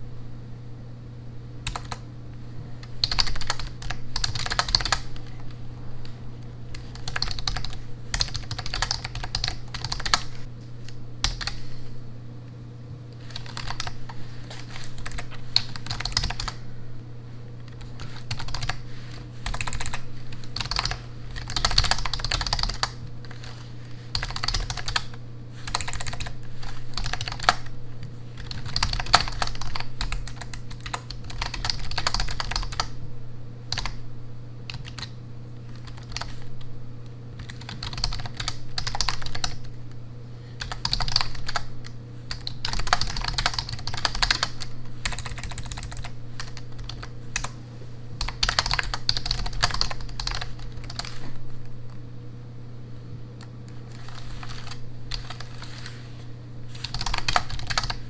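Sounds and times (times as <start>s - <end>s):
steady low hum: 0.0s - 58.0s
typing on computer keyboard: 1.7s - 2.0s, 2.8s - 5.4s, 6.7s - 10.4s, 11.2s - 11.6s, 13.2s - 14.1s, 14.7s - 16.6s, 17.7s - 18.8s, 19.4s - 23.0s, 24.1s - 27.7s, 28.4s - 33.0s, 33.7s - 34.0s, 34.7s - 36.5s, 37.4s - 39.7s, 40.6s - 47.6s, 48.2s - 51.3s, 53.4s - 55.6s, 56.8s - 58.0s.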